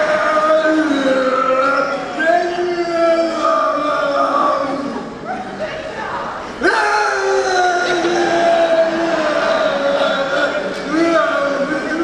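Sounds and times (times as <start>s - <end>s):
zombie-style moan: 6.6s - 12.0s.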